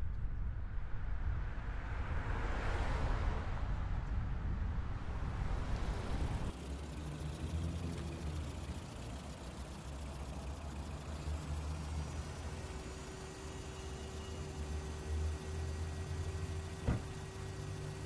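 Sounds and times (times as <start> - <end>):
faint steady tone: 5.5 - 18.0
car engine idling: 5.6 - 18.0.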